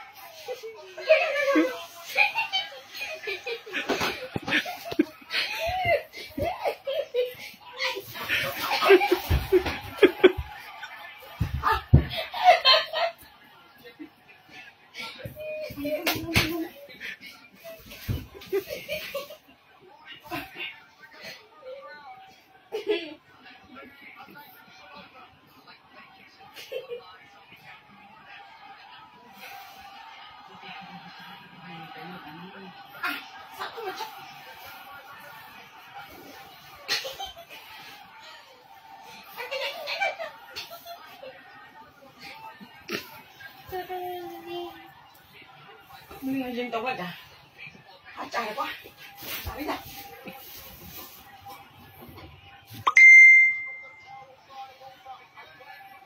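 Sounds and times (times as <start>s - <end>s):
faint television music: 0.0s - 56.0s
television voice: 0.0s - 56.0s.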